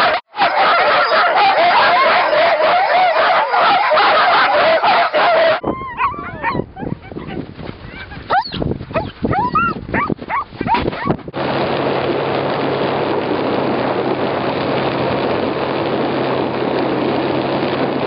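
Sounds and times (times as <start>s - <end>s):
sled dogs barking and howling: 0.0s - 11.2s.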